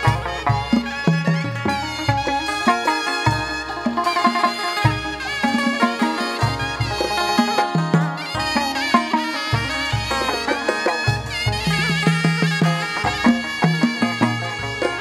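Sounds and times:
percussion: 0.0 - 15.0.

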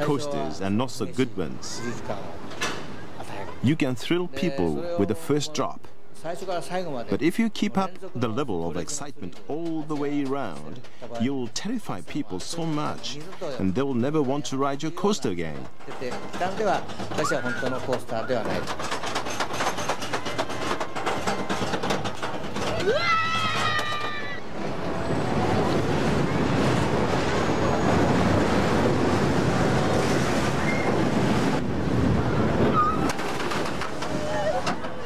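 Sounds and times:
roller coaster clicking and clattering: 6.2 - 35.0
roller coaster rushing rumble: 8.3 - 35.0.

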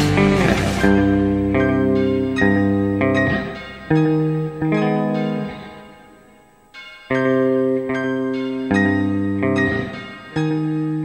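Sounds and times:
clean electric guitar: 0.0 - 11.0.

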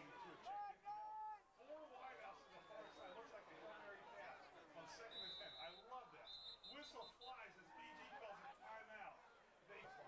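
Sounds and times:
crowd chatter: 0.0 - 0.4
referee's whistle: 5.1 - 7.3.

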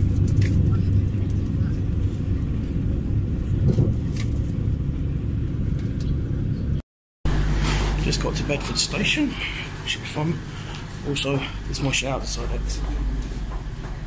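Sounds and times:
train rumbling inside carriage: 0.0 - 14.0.

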